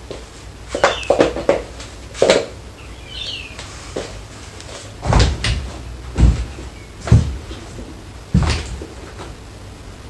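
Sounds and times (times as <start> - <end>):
shoes knocking on metal rack: 5.0 - 9.3.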